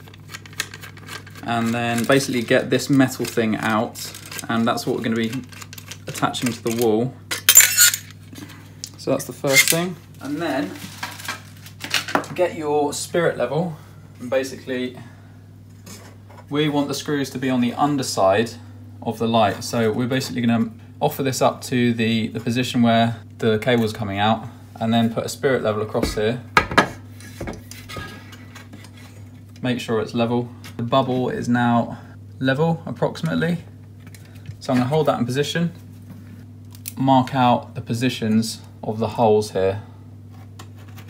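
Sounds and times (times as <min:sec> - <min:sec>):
steady low hum: 0:00.0 - 0:41.0
metal bracket scraping and clinking: 0:07.4 - 0:08.1.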